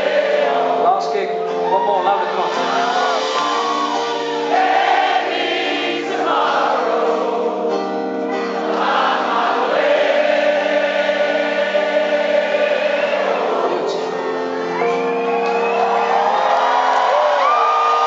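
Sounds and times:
audience singing along: 0.0s - 1.4s, 2.2s - 18.0s
live rock band playing slow song: 0.6s - 5.2s, 6.1s - 9.5s, 13.6s - 18.0s
acoustic guitar: 6.0s - 10.1s.

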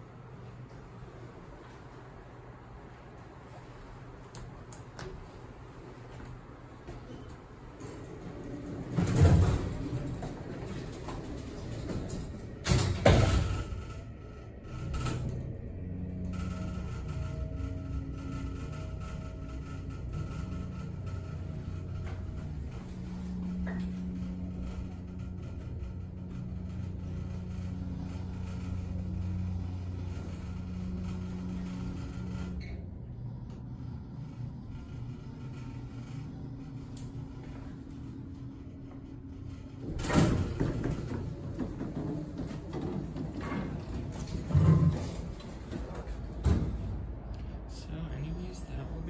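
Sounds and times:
elevator steady hum: 0.0s - 49.0s
elevator thump and rumble: 4.5s - 49.0s.

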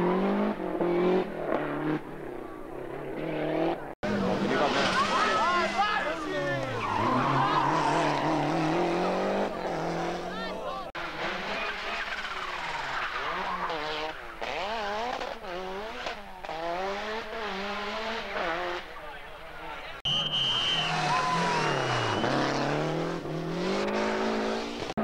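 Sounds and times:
rally car engine at full throttle: 0.0s - 25.0s.

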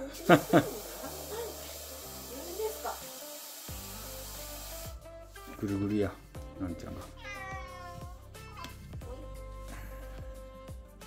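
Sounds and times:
cat meowing: 7.2s - 8.2s.

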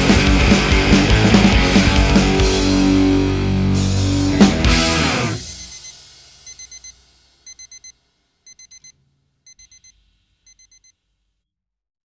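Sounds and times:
rock song ringing out: 0.0s - 6.8s
alarm clock beeping: 5.4s - 11.0s.

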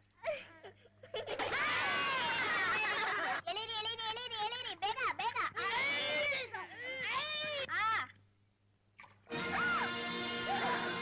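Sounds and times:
children shouting: 5.6s - 7.7s, 9.4s - 11.0s.

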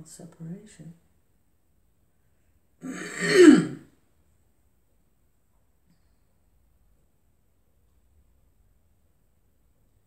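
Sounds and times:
person clearing throat: 2.8s - 3.9s.

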